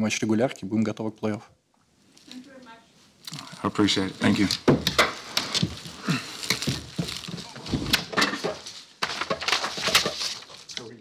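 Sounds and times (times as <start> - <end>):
papers rustling: 3.3 - 11.0.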